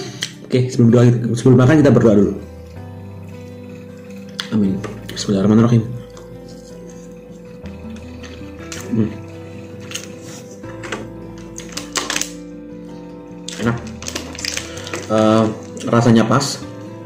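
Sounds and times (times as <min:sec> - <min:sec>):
background music with held notes: 0:00.0 - 0:17.0.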